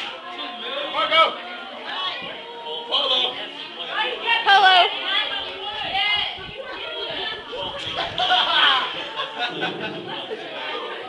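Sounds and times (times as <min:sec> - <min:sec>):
young people chattering: 0:00.0 - 0:11.0.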